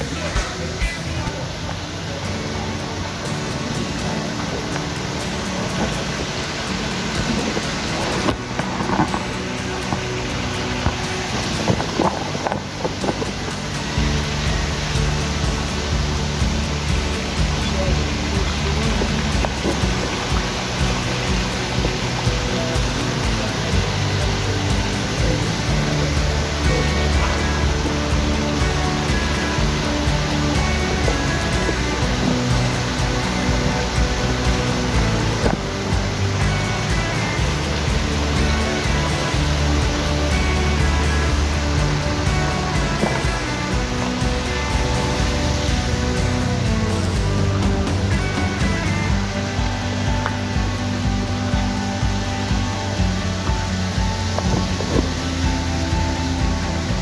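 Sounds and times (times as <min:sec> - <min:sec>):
background music with bass: 0:00.0 - 0:57.0
steady hiss: 0:00.0 - 0:57.0.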